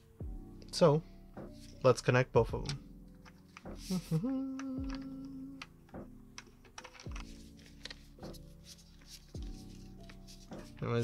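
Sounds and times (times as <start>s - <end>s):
tube lights clicking and tapping: 2.6s - 8.0s.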